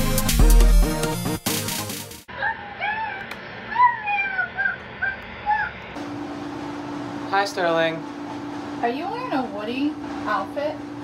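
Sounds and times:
cat meowing: 2.8s - 5.8s.

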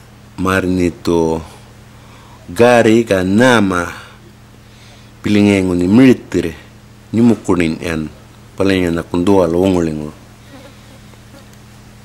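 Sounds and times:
low buzzing hum: 0.0s - 12.0s
person speaking: 5.2s - 10.2s.

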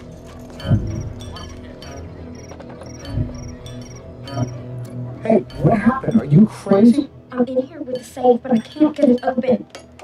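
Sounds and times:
low steady music: 0.0s - 10.0s.

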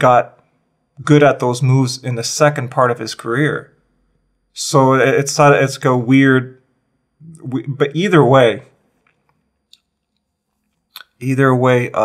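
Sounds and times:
man speaking: 0.0s - 0.4s, 1.0s - 3.8s, 4.6s - 6.6s, 7.2s - 8.7s, 11.0s - 12.0s
mouth click: 10.9s - 11.2s.

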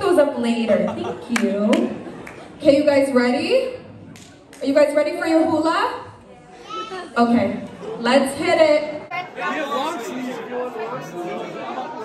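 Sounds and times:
overlapping voices chattering: 3.5s - 12.0s.

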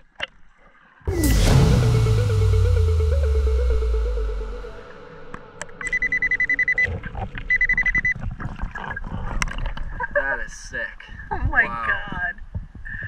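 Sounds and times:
background music: 1.1s - 7.7s
rapid high-pitched beeping: 1.2s - 8.2s.

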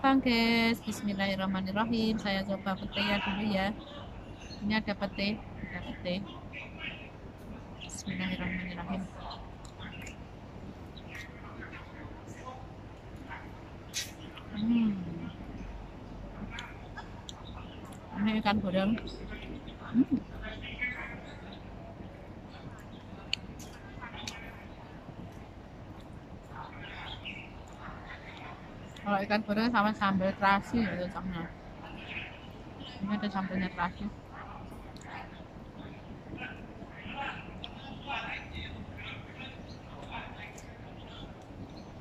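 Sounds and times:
faint voices: 0.0s - 42.0s
low background noise: 0.0s - 42.0s
outdoor background rumble: 0.0s - 42.0s.

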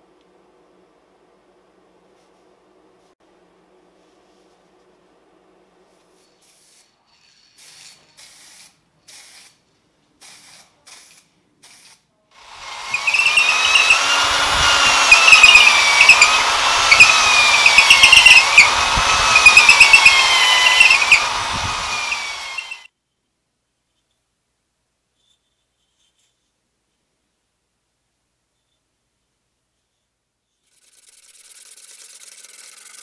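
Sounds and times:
electric drill boring into wood: 12.4s - 22.9s.

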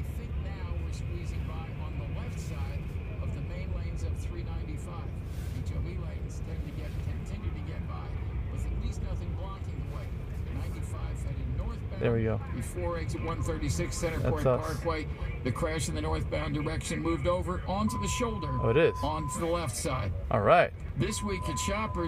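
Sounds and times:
road and traffic rumble: 0.0s - 22.0s.

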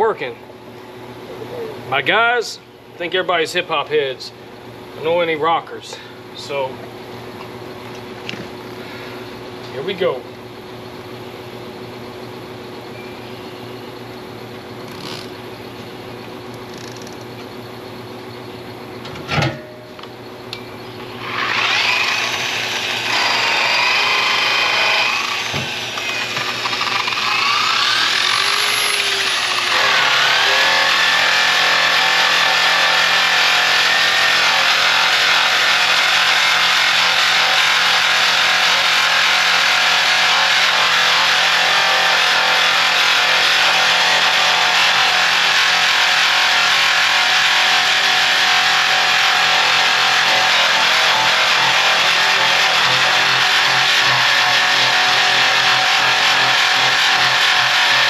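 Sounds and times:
handheld grinder on metal: 21.2s - 58.0s.

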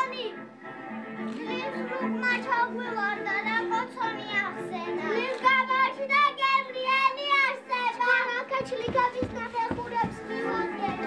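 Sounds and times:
children's voices: 0.0s - 0.4s, 1.3s - 11.0s
music: 0.0s - 11.0s
dull thumps: 8.5s - 11.0s.

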